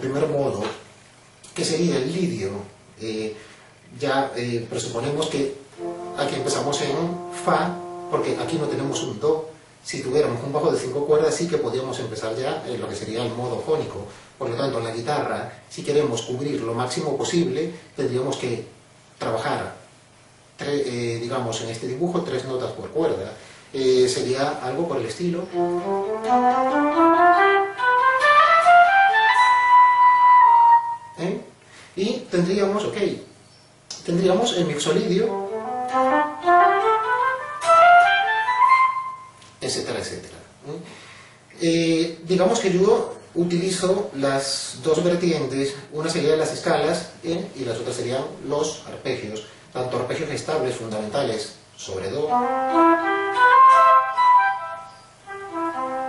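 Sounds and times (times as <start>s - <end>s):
synthesized electric guitar scale: 5.8s - 9.5s, 52.4s - 55.9s.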